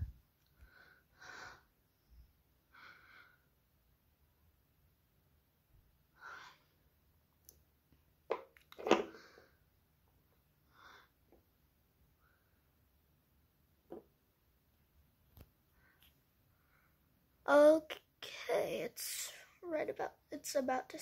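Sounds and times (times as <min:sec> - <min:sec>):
soft breaths: 0:00.4 - 0:03.7, 0:06.1 - 0:07.0, 0:15.6 - 0:17.3.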